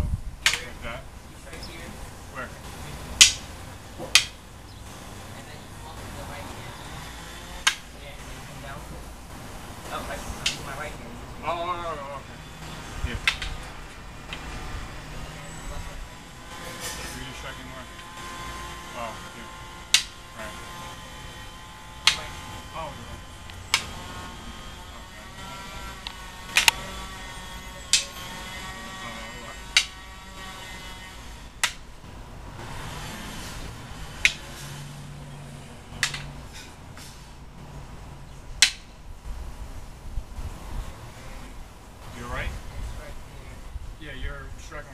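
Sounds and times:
sticks clacking together: 4.1 - 4.4, 13.2 - 14.5, 22.0 - 22.2, 36.0 - 37.1, 38.6 - 38.9.

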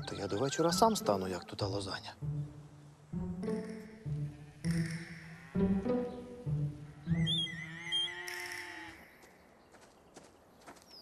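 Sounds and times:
high twittering: 6.9 - 8.8
cow mooing: 7.4 - 9.1.

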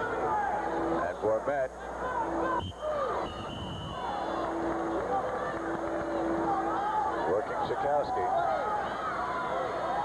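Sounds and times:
crowd shouting: 0.0 - 1.0, 1.9 - 10.0.

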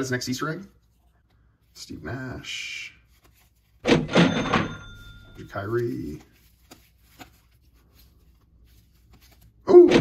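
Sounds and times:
cash register clunk: 3.8 - 5.5
cash register bell ringing: 3.9 - 5.8.

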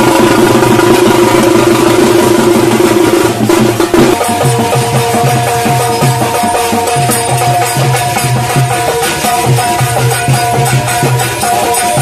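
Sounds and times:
fast drumming: 0.0 - 12.0.

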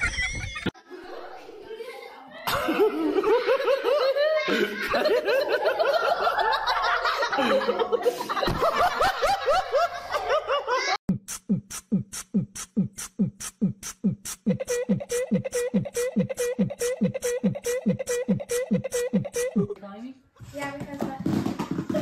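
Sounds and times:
boys stifled laughter: 0.0 - 1.4, 2.4 - 11.0, 14.3 - 19.8
rhythmic sharp hits: 11.1 - 19.8.

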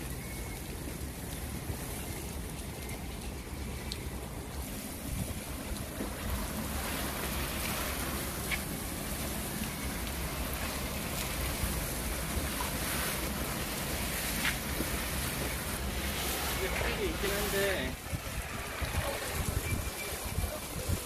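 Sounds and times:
garden hose spraying water: 0.0 - 21.0.

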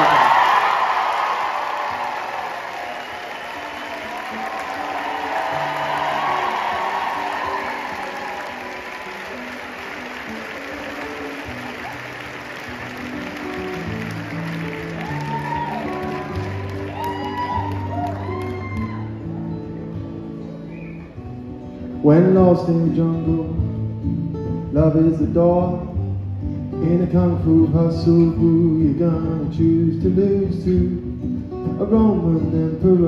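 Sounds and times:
audience applauding and cheering: 0.0 - 21.3
acoustic guitar playing: 1.3 - 33.0.

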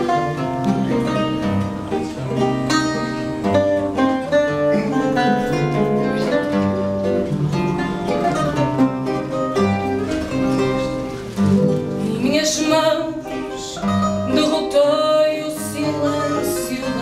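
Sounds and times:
plucked guitar chords: 0.0 - 17.0
plucked guitar melody: 0.0 - 17.0.

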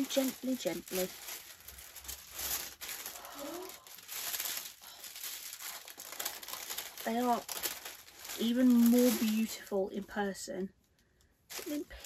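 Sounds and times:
paper wrapping tearing and crinkling: 0.0 - 10.3, 11.5 - 12.0.

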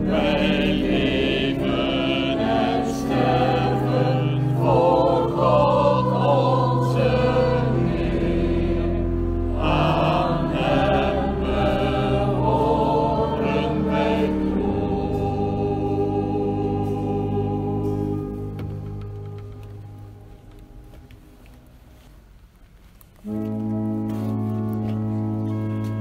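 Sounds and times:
church choir singing: 0.0 - 21.5.

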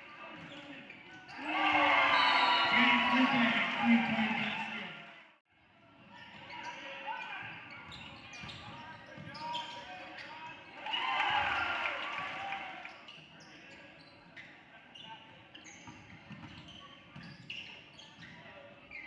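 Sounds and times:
voices of players and spectators: 0.0 - 19.0
crowd shouting: 1.4 - 5.0.

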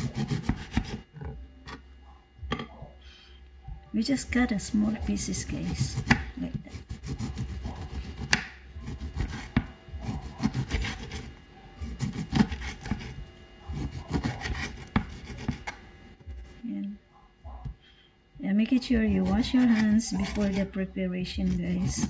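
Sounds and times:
knife cutting lemon: 0.0 - 1.0, 5.0 - 15.8, 19.1 - 20.7, 21.4 - 22.0.

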